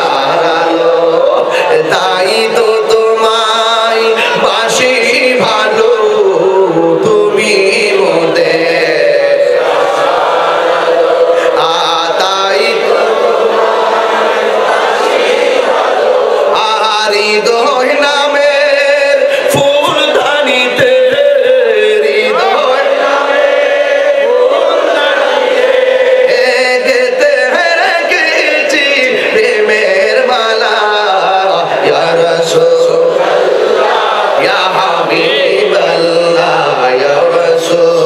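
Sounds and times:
man chanting through microphones: 0:00.0 - 0:10.0, 0:11.0 - 0:15.6, 0:16.3 - 0:38.0.

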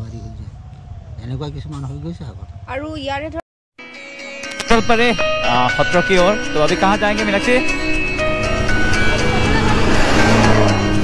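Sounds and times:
background music: 0:03.8 - 0:11.0
traffic passing close by: 0:06.7 - 0:11.0.

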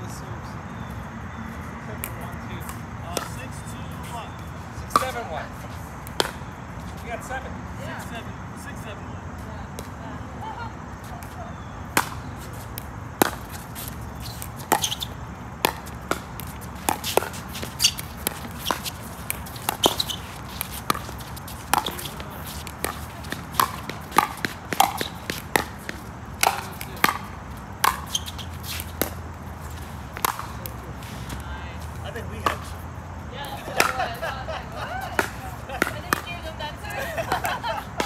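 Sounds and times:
ball bouncing on hard court: 0:02.0 - 0:03.5, 0:04.9 - 0:05.3, 0:06.0 - 0:06.5, 0:11.9 - 0:31.4, 0:32.4 - 0:32.8, 0:35.2 - 0:36.5
paddles striking plastic ball: 0:14.4 - 0:29.2, 0:30.1 - 0:30.8.

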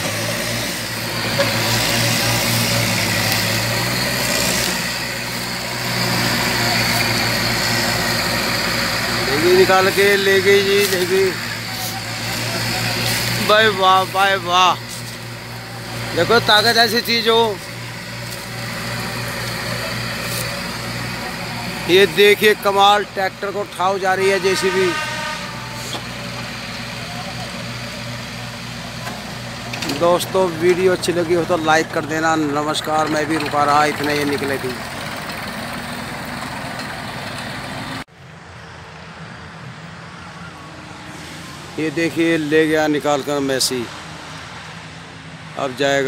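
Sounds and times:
heavy diesel engine running: 0:00.0 - 0:38.1.

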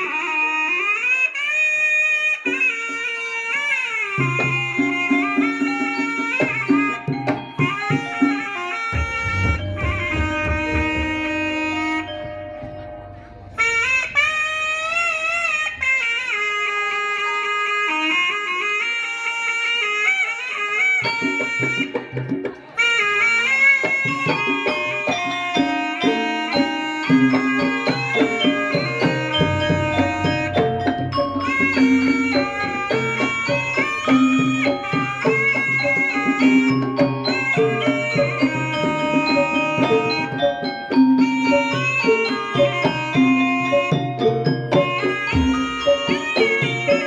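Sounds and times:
nasal reed shawm melody: 0:00.0 - 0:47.0
hand drum strokes: 0:04.2 - 0:14.3, 0:23.5 - 0:47.0.

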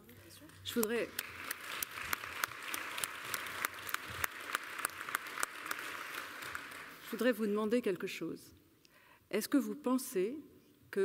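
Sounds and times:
audience applauding: 0:00.7 - 0:07.3.

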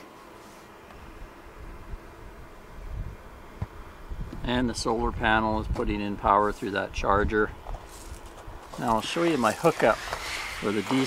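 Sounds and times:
faint hiss: 0:07.9 - 0:11.0.

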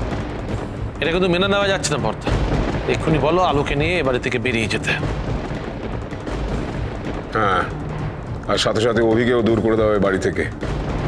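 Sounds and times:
low rumbling dramatic music: 0:00.0 - 0:11.0.

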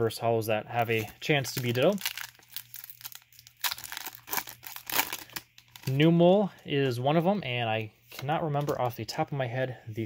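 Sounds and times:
plastic wrapper crinkling and tearing: 0:00.8 - 0:06.1.

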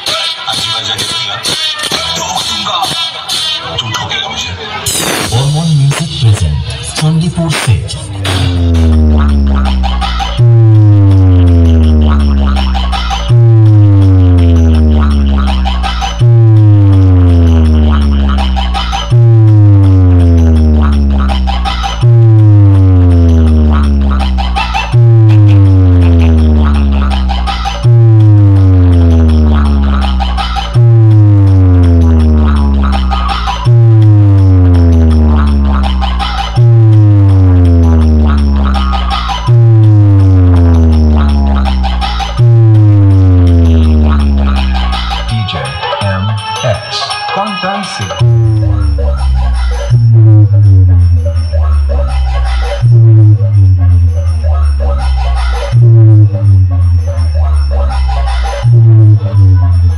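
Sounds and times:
loud electronic music: 0:00.0 - 0:59.9
deep sliding bass notes: 0:05.0 - 0:45.5, 0:48.2 - 0:54.8, 0:55.7 - 0:57.6, 0:58.5 - 0:59.9
ticking percussion: 0:05.0 - 0:59.9.

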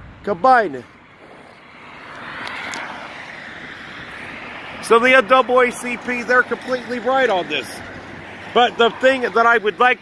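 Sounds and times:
passing vehicle rushing: 0:00.0 - 0:10.0.

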